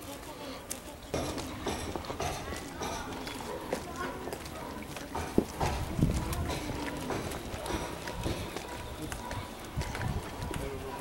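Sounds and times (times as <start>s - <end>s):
footsteps on stone path: 0.0s - 11.0s.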